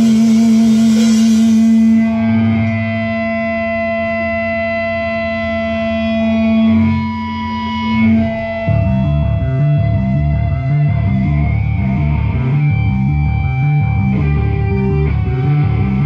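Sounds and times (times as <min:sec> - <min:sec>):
electric guitar sustained note: 0:00.0 - 0:16.0
noisy high wash: 0:00.0 - 0:16.0.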